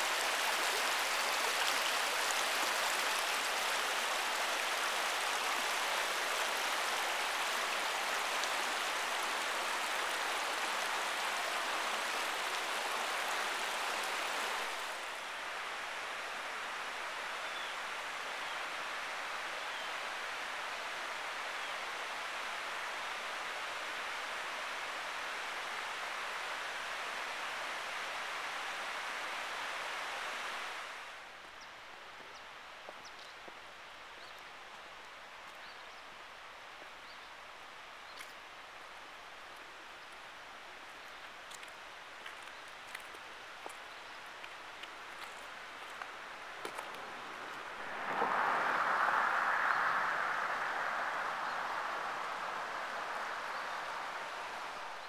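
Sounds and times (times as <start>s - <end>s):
creek water rushing over rocks: 0.0s - 55.0s.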